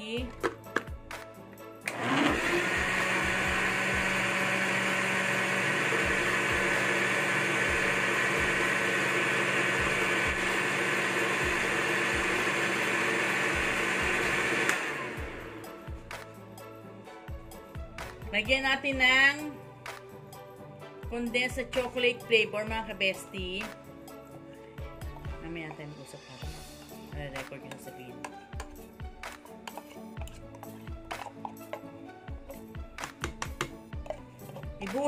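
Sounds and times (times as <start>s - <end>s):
blender motor running: 1.8s - 15.8s.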